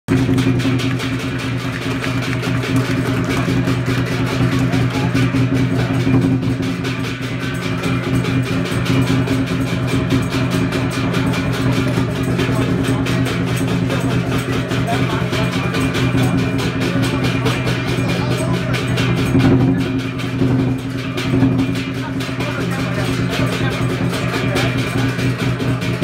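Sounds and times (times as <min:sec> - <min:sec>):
cymbal crashes: 0:00.1 - 0:26.0
drum: 0:00.1 - 0:26.0
gong: 0:00.1 - 0:26.0.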